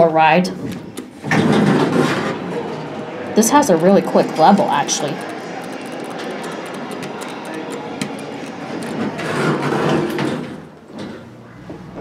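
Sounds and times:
elevator machinery running: 0:00.0 - 0:12.0.

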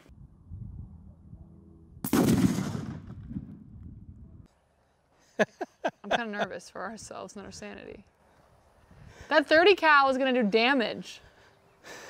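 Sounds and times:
exploding target boom: 0:02.0 - 0:03.7.

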